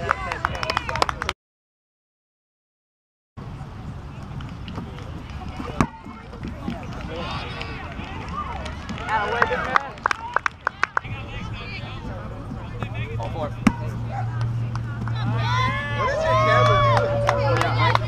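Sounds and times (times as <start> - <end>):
players calling out and chattering: 3.4 - 18.0
sharp claps: 6.8 - 11.1, 16.6 - 18.0.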